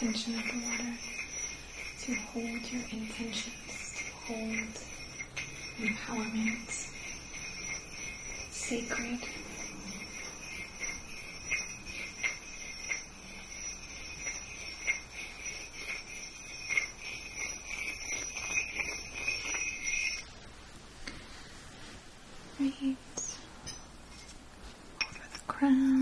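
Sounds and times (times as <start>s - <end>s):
crystal wands tapping together: 0.0s - 20.2s
steady high ringing tone: 0.0s - 20.3s, 22.6s - 24.4s, 25.0s - 26.0s.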